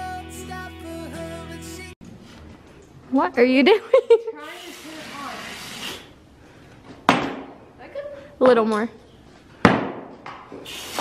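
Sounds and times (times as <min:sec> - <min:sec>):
hose nozzle spray hissing: 0:04.4 - 0:06.2, 0:10.6 - 0:11.0.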